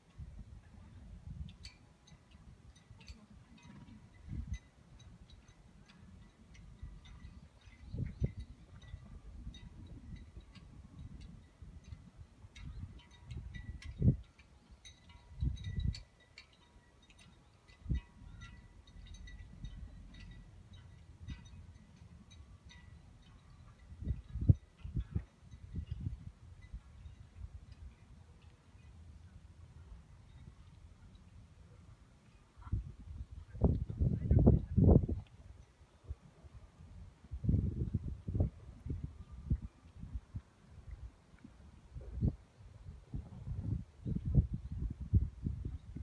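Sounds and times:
wind buffeting microphone: 0.0s - 16.2s, 17.2s - 28.9s, 32.6s - 46.0s
faint scattered ticks: 1.4s - 26.0s.

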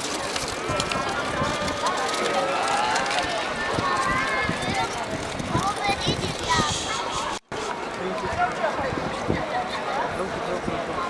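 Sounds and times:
footsteps on cobblestones: 0.0s - 11.0s
people talking: 0.0s - 11.0s.

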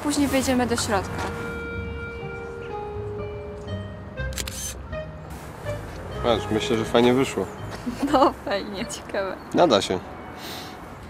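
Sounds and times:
music with long held notes: 1.0s - 8.3s
camera shutter click: 4.3s - 4.8s.

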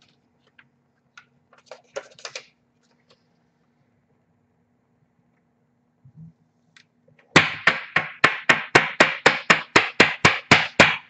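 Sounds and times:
cards clicking and rustling: 1.6s - 3.2s.

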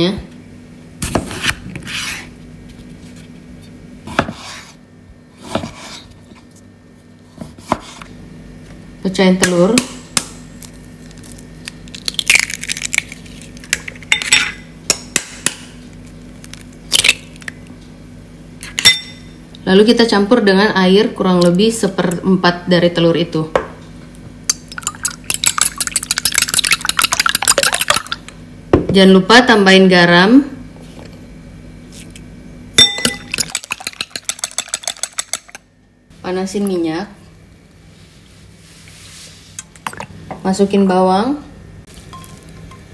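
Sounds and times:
eggs cracking against bowl: 10.2s - 14.3s, 24.5s - 28.3s, 33.0s - 35.6s
eggshell crackling: 10.6s - 14.1s, 24.5s - 28.2s
utensil clinking against bowl: 32.8s - 35.6s.

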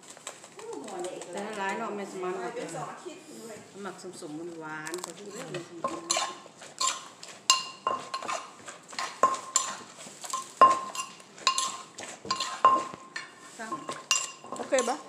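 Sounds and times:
metal spoon clinking on mortar: 5.2s - 15.0s
pestle pounding in mortar: 5.6s - 13.1s.

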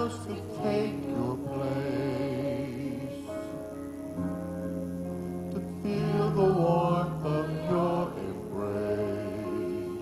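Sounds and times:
worship singers singing together: 0.0s - 3.6s, 5.5s - 10.0s
instrumental accompaniment: 0.0s - 10.0s.

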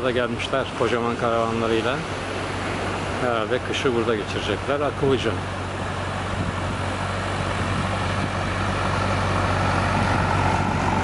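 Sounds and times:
vehicle engine running: 4.6s - 11.0s.

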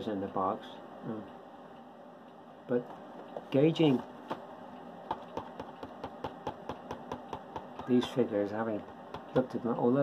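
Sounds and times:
rapid regular clicking: 1.3s - 10.0s.

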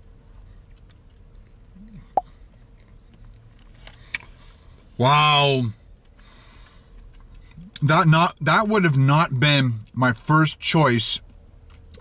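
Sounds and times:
quiet chewing: 0.0s - 4.9s, 5.7s - 7.8s, 11.2s - 12.0s.

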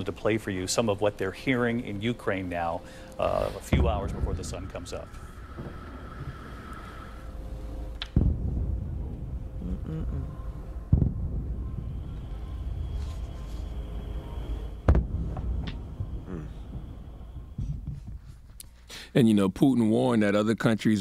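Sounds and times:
air raid siren: 0.0s - 18.3s
low rumble: 0.0s - 18.5s
distant explosions booming: 3.2s - 18.3s.

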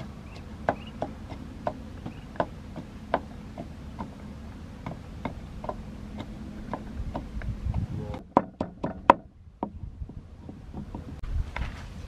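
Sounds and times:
wooden pestle pounding in mortar: 0.0s - 4.2s, 4.8s - 9.8s.

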